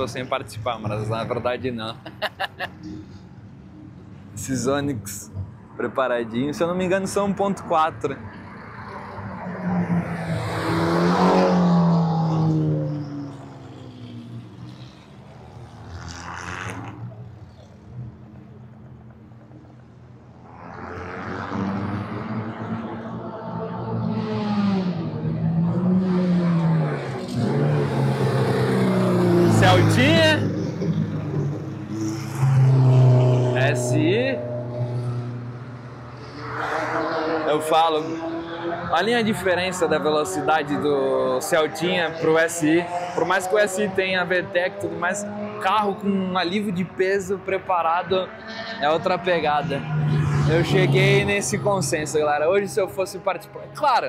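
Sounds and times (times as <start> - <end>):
racing cars passing: 0.0 - 54.0.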